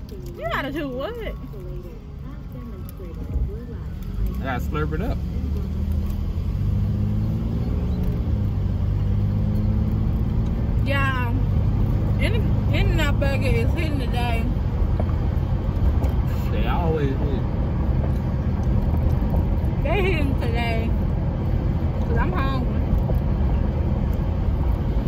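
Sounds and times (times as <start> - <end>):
car engine humming: 0.0 - 25.0.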